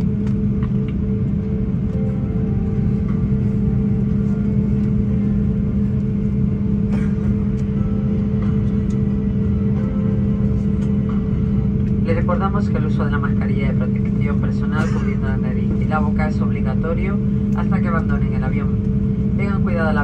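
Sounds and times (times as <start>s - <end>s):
aircraft engines idling: 0.0s - 20.0s.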